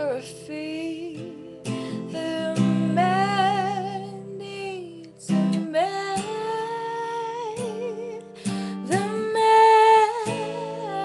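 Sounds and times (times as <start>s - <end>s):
woman singing with vibrato: 0.0s - 11.0s.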